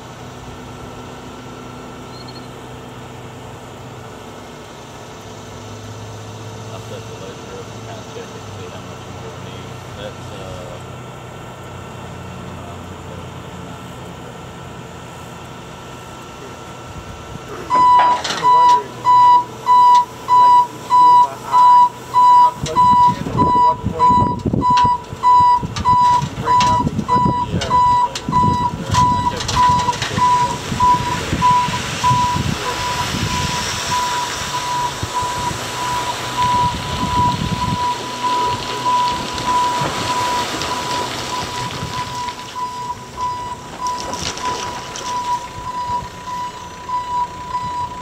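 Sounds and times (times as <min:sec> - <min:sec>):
warning beeper: 0:17.7 - 0:44.1
dirt sliding and pouring: 0:28.9 - 0:46.9.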